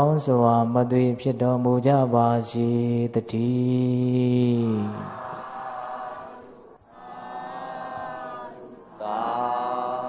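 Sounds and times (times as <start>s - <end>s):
voice chanting long held tones: 3.8s - 10.0s.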